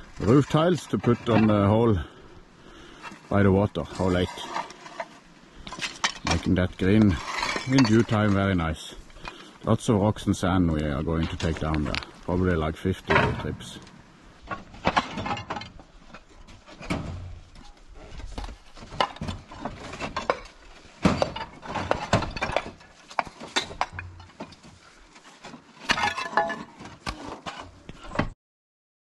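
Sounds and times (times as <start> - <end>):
roof tiles clinking and knocking: 2.9 - 9.5, 14.4 - 28.3.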